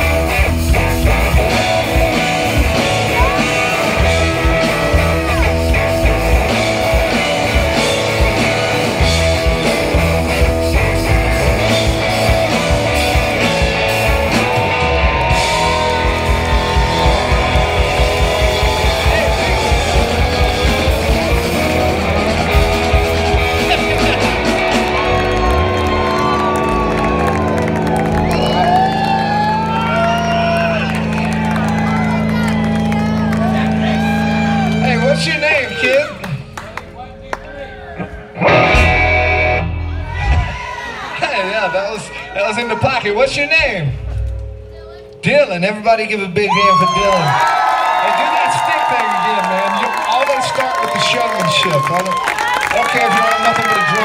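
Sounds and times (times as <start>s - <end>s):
electric guitar: 0.0s - 41.3s, 46.5s - 54.0s
bass guitar: 0.0s - 54.0s
drums: 0.0s - 54.0s
people shouting and cheering: 0.0s - 54.0s.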